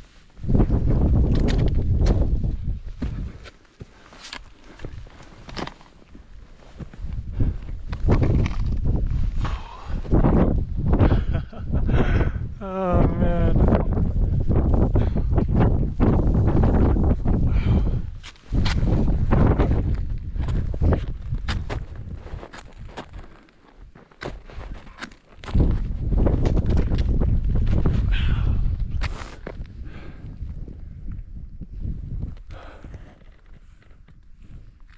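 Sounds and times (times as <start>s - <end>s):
man groaning: 12.4s - 14.0s.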